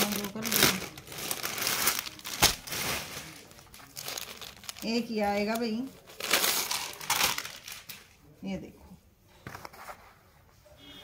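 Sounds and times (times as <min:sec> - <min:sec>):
fabric rustling and crinkling: 0:00.0 - 0:08.0.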